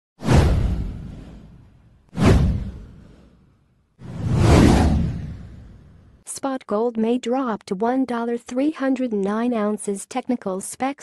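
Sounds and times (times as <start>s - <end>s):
whoosh sound effects: 0.2s - 3.4s, 4.0s - 6.2s.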